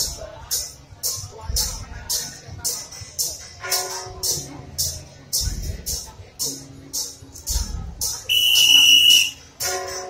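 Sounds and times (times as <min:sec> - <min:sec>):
drum beats: 0:00.0 - 0:10.0
shrill steady high tone: 0:08.3 - 0:09.4.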